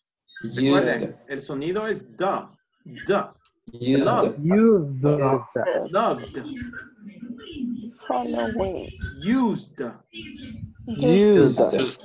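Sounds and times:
person speaking over video call: 0.4s - 6.8s, 8.1s - 12.0s.

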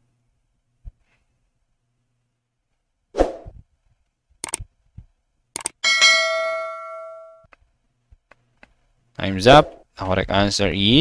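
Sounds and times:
notification bell ding: 5.8s - 7.4s.

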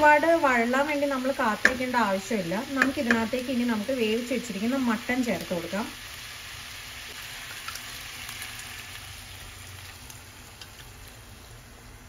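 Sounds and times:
vegetables sizzling in oil: 0.0s - 12.0s.

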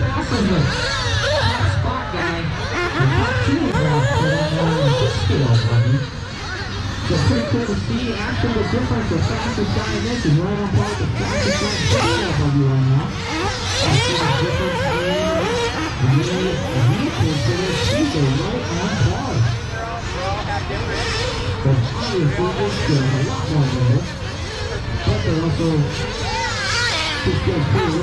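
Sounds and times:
model race car engines revving: 0.0s - 28.0s
voices talking: 0.0s - 28.0s.

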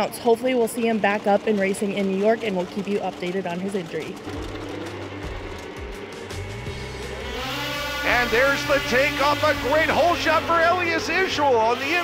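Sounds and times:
snowmobile engines roaring: 0.0s - 12.0s
music with deep bass notes: 4.0s - 12.0s.

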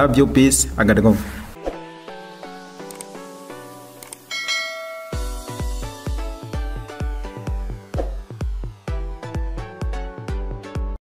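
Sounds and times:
bright ringing chime: 4.3s - 5.9s
bell-like music: 4.3s - 7.6s.

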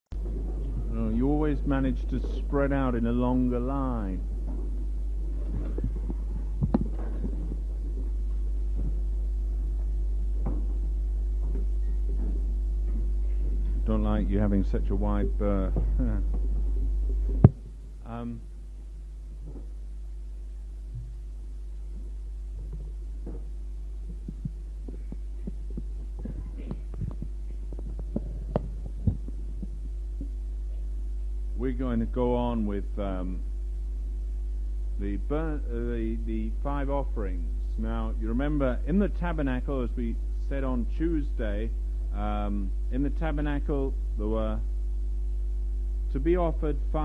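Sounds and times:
low electrical hum: 0.1s - 47.0s
faint room noise: 0.2s - 47.0s
soft knocks and clicks: 4.4s - 9.0s.

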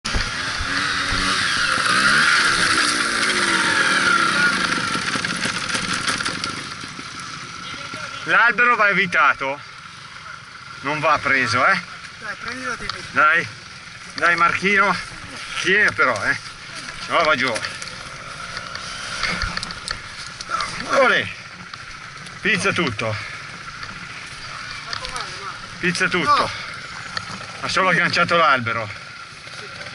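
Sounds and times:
motorcycle engine running: 0.0s - 29.9s.

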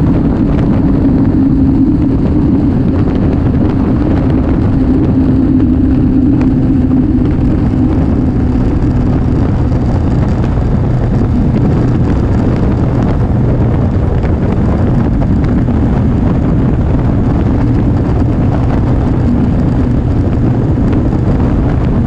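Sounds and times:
motorcycle engine cruising: 0.0s - 22.0s
wind and road noise: 0.0s - 22.0s.

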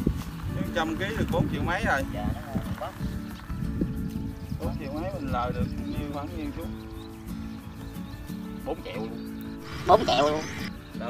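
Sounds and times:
background music: 0.0s - 11.0s
man speaking: 9.6s - 10.7s.

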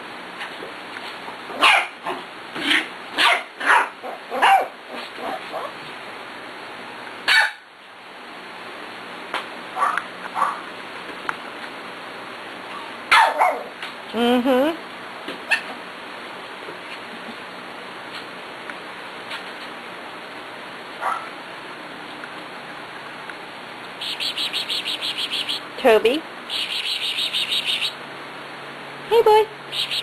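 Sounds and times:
dog barking: 1.6s - 5.7s, 7.3s - 7.7s, 9.8s - 10.6s, 13.1s - 13.7s, 21.0s - 21.3s.

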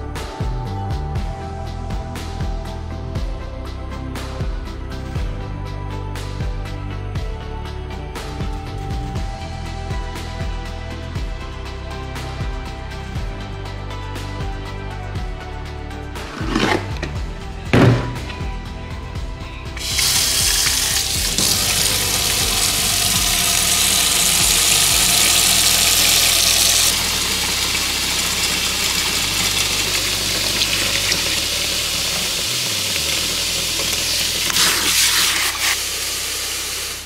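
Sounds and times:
faucet water filling bucket: 19.8s - 37.0s.

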